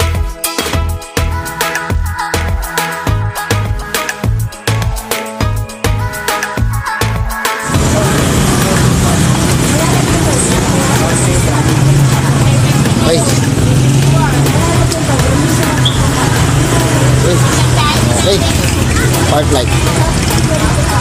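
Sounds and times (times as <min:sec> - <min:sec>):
indistinct voices talking: 0:07.6 - 0:21.0
scooter engine idling: 0:07.6 - 0:21.0.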